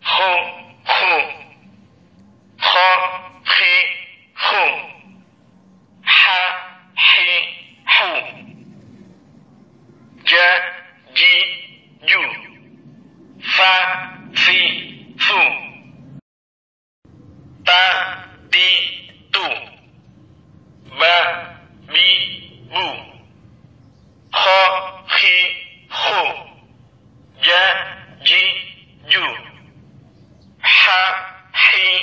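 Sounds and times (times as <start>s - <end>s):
recorded voice from small speaker: 0.0s - 1.8s, 2.6s - 5.2s, 6.0s - 8.6s, 10.2s - 12.7s, 13.4s - 16.0s, 17.6s - 20.0s, 20.8s - 23.3s, 24.3s - 26.7s, 27.3s - 29.8s, 30.6s - 32.0s.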